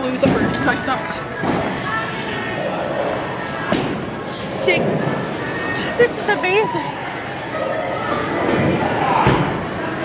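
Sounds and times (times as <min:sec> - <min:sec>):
background noise: 0:00.0 - 0:10.0
distant chatter: 0:00.0 - 0:10.0.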